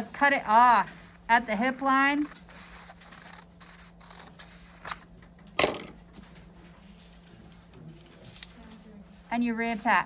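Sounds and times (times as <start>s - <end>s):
scissors cutting paper: 2.1s - 5.1s.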